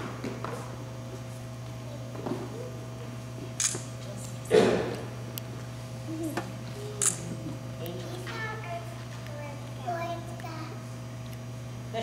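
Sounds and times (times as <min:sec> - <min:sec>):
faint murmur: 0:06.0 - 0:10.9.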